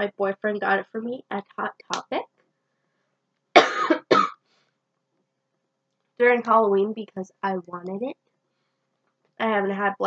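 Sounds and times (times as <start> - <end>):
woman coughing: 3.6 - 4.4.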